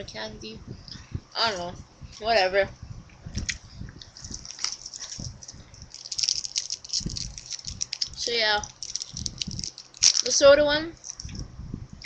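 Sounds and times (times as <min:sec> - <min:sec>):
chewing candy: 0:03.5 - 0:10.4, 0:11.0 - 0:11.4.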